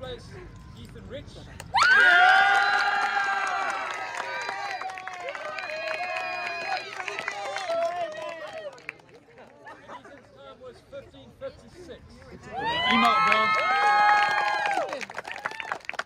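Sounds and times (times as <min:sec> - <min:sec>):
crowd cheering and whooping: 0:01.7 - 0:08.9, 0:12.4 - 0:16.0.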